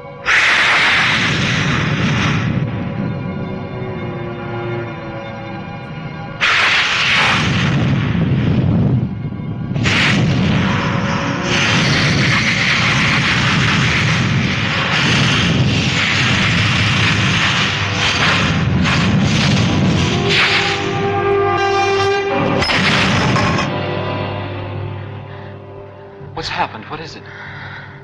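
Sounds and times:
deep rumbling lava roar: 7.1s - 21.1s.

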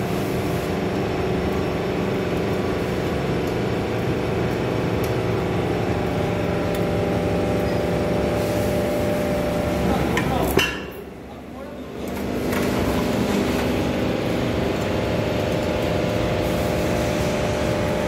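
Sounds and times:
hydraulic motor and pump drone: 0.0s - 18.0s.

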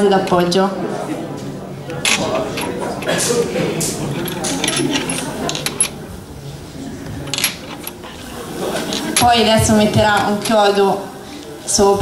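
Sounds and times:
steel nails clinking: 4.1s - 6.0s.

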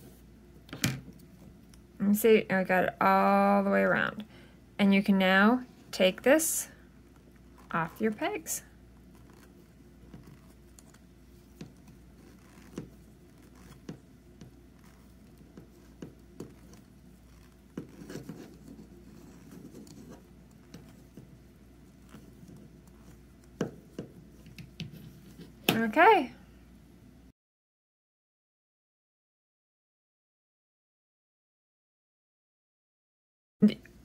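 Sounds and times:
yarn rubbing and scraping: 7.2s - 25.8s.

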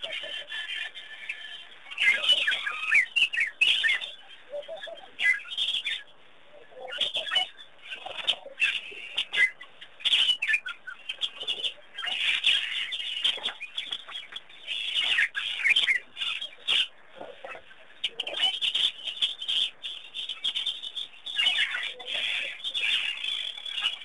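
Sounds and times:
birds chirping: 0.0s - 24.0s.

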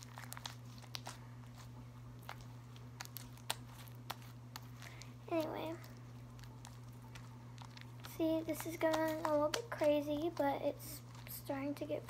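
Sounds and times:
slime squeezed by hand: 0.0s - 11.4s
sticky clicks and pops: 6.3s - 10.5s.

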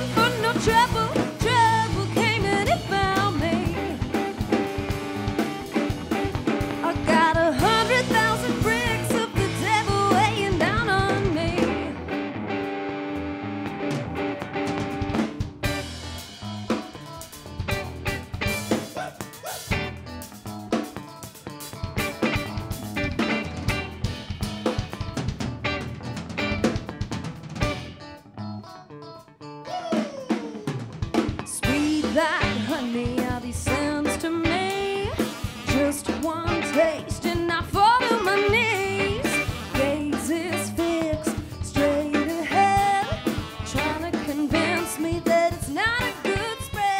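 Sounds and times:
electric guitar: 0.0s - 46.9s
live rock band playing: 0.0s - 46.9s.

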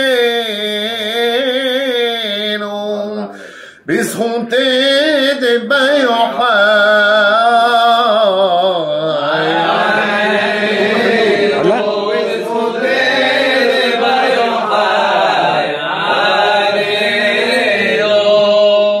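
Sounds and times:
men chanting: 0.0s - 19.0s.

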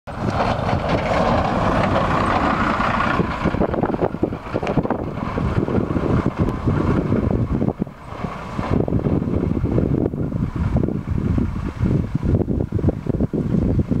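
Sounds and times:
bus passing by: 0.1s - 14.0s
wind buffeting microphone: 0.1s - 14.0s.

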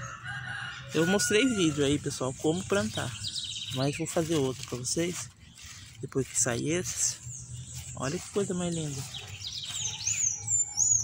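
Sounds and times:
bird trilling and whistling: 7.2s - 11.0s.

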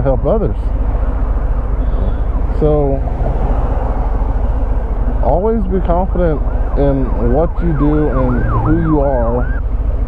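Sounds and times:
motorcycle engine rumbling: 0.0s - 10.0s
wind and road noise: 0.0s - 10.0s.

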